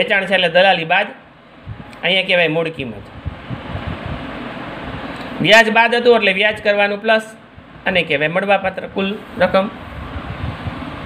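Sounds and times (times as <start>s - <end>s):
wind buffeting microphone: 1.6s - 2.0s, 2.8s - 5.2s, 8.6s - 11.0s.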